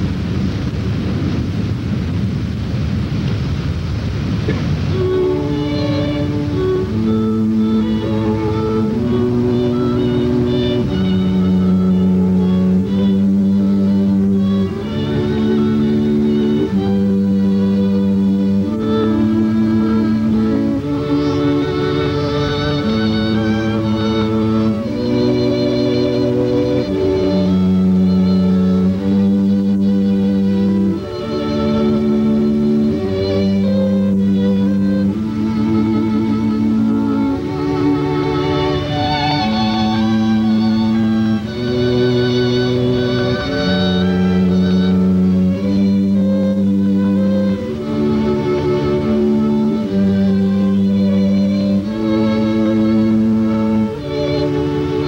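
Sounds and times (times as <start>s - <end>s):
quartet playing slow held chords: 4.2s - 55.0s.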